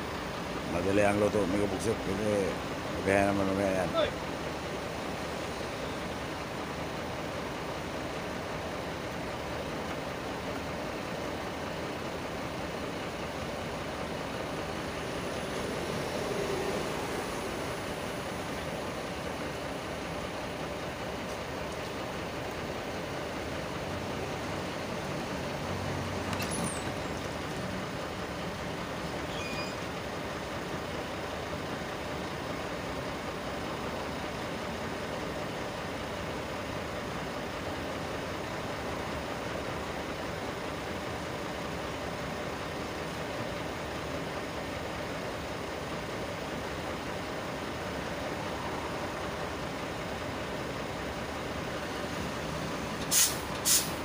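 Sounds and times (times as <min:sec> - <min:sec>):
traffic rumble: 0:00.0 - 0:54.0.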